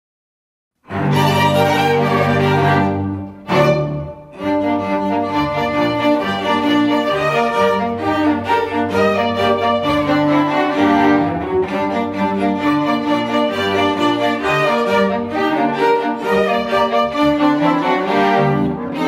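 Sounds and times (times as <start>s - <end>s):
string orchestra playing: 0.8s - 19.0s.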